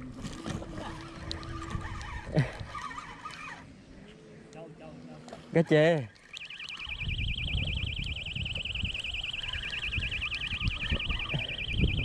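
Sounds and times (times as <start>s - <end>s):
high warbling electronic tone: 6.2s - 12.0s.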